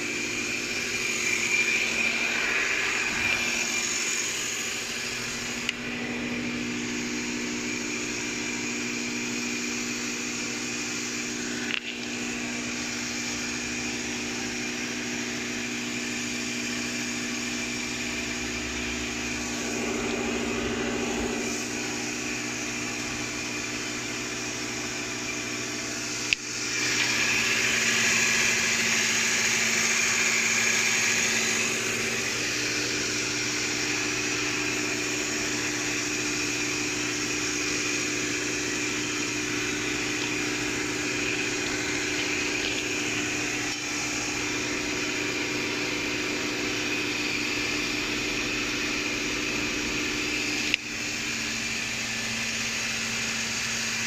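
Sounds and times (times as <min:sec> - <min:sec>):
machine humming with hiss: 0:00.0 - 0:54.0.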